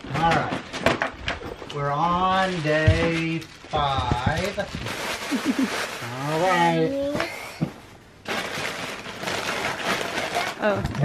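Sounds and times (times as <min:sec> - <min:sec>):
cardboard crackling and rustling: 0:00.2 - 0:07.2, 0:08.3 - 0:11.0.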